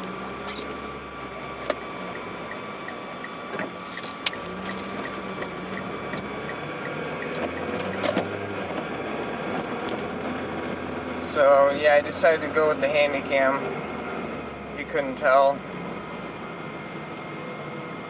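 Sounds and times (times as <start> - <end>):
engine and road noise hum: 0.0 - 18.0
fast faint ticking: 2.1 - 8.1.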